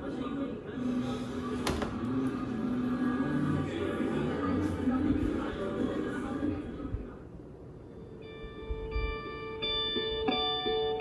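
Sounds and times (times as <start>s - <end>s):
low music drone: 0.8s - 6.7s.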